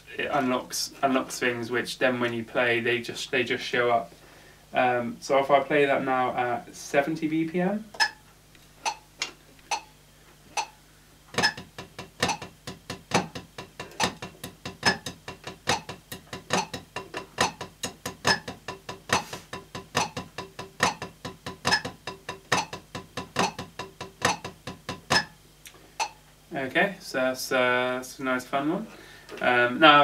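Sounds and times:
metronome clicking: 0:08.0 - 0:08.2, 0:08.8 - 0:09.9, 0:10.6 - 0:10.8, 0:11.4 - 0:26.2
drumsticks on practice pad: 0:08.0 - 0:26.2.

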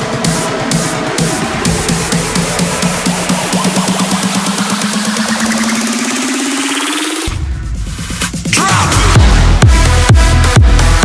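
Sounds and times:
rising synth pulse build-up: 0:00.0 - 0:07.4.

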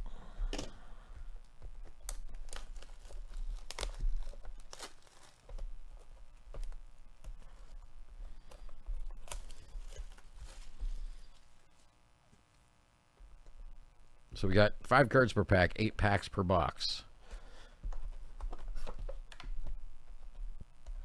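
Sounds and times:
plastic shrink-wrap tearing and crinkling: 0:02.0 - 0:05.8, 0:09.2 - 0:10.8.

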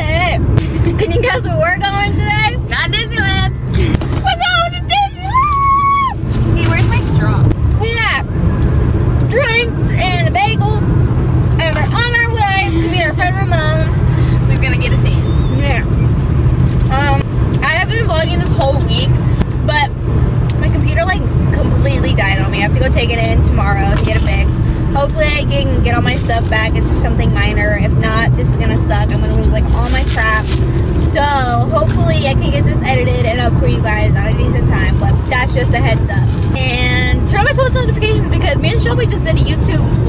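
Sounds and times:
woman talking: 0:00.0 - 0:08.3, 0:09.2 - 0:10.9, 0:11.5 - 0:15.9, 0:16.9 - 0:19.9, 0:20.5 - 0:40.0
car rumble: 0:00.0 - 0:40.0.

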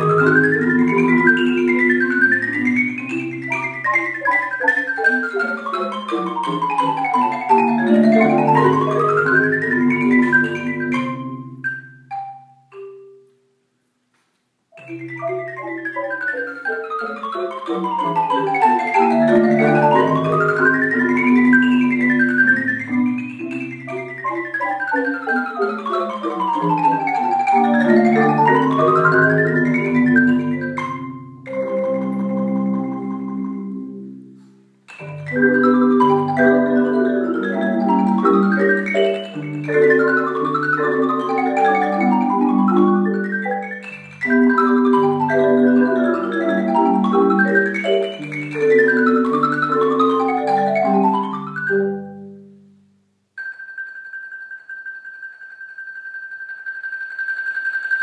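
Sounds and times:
mallet percussion scale runs: 0:00.0 - 0:13.2, 0:14.8 - 0:34.1, 0:34.9 - 0:52.4, 0:53.4 - 0:58.0.

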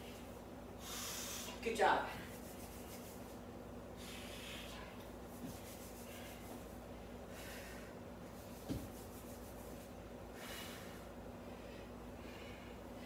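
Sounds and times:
woman breathing hard: 0:00.8 - 0:01.6, 0:03.9 - 0:05.1, 0:06.0 - 0:08.1, 0:10.2 - 0:13.0.

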